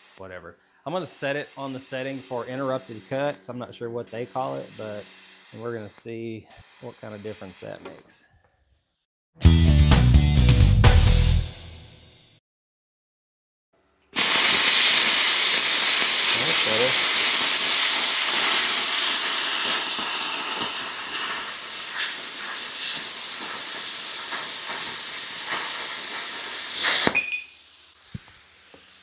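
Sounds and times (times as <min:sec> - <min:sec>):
plasma cutter hissing: 0:00.9 - 0:08.0, 0:14.2 - 0:29.0
quiet hiss of air: 0:14.2 - 0:28.8
plasma cutter crack: 0:14.2 - 0:29.0.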